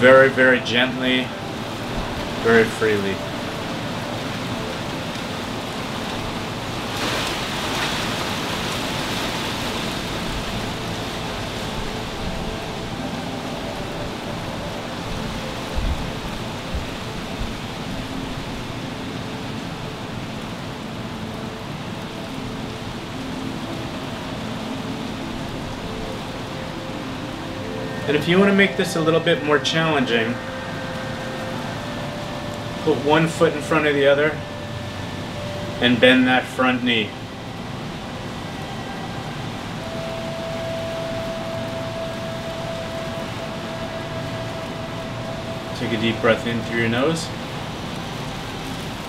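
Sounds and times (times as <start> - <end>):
rushing background noise: 0.0 - 49.0.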